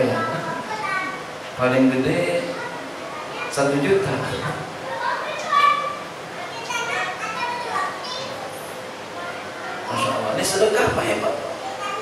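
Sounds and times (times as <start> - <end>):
murmur of audience voices: 0.0 - 12.0.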